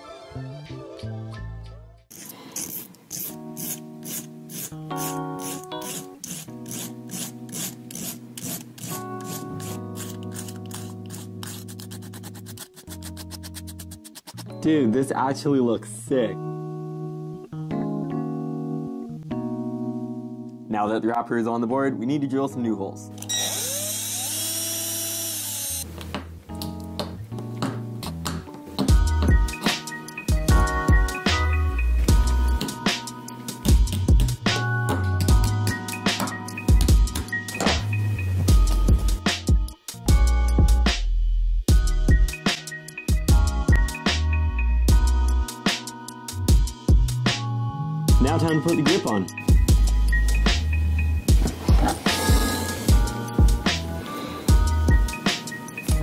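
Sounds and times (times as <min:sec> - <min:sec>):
nail file scraping: 0:02.1 - 0:14.5
cordless drill whirring: 0:23.2 - 0:25.9
background music with a beat: 0:26.2 - 0:56.0.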